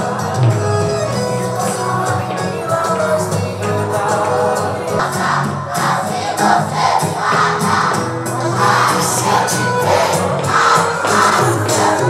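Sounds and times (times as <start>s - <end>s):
crowd shouting and singing along: 0.0s - 12.0s
loud dance music: 0.0s - 12.0s.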